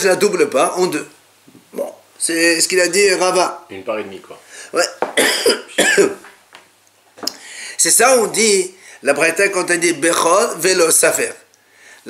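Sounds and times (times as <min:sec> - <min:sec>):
man coughing: 0:05.2 - 0:06.2.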